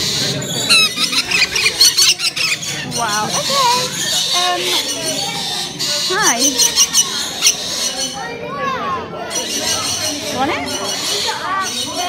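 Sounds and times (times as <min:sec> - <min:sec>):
birds squeaking and chirping: 0:00.0 - 0:12.0.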